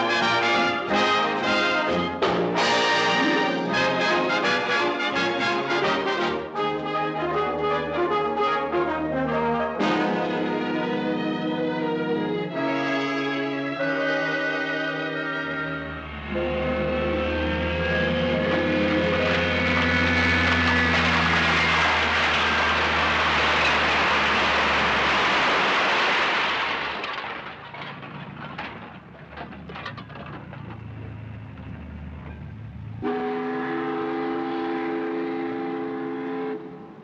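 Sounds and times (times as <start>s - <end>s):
horn blast: 0.0s - 11.1s, 12.4s - 24.2s, 33.0s - 37.0s
orchestral chord: 0.0s - 21.4s.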